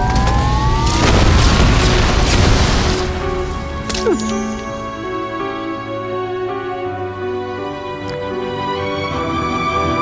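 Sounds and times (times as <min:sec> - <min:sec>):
rising whine: 0:00.0 - 0:01.6
explosion boom: 0:00.0 - 0:03.6.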